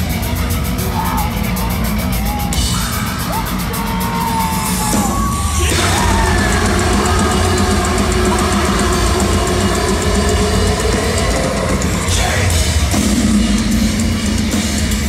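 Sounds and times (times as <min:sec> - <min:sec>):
metal band playing live: 0:00.0 - 0:15.0.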